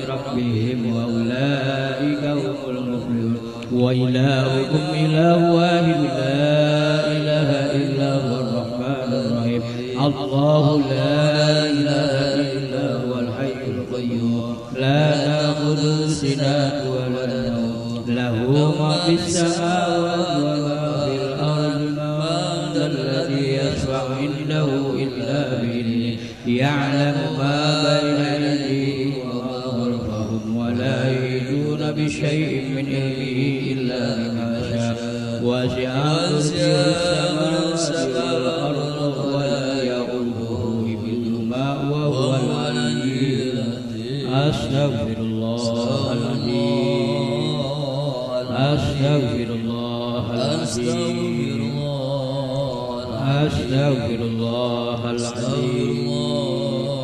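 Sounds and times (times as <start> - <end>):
man chanting into a microphone: 0.0 - 57.0.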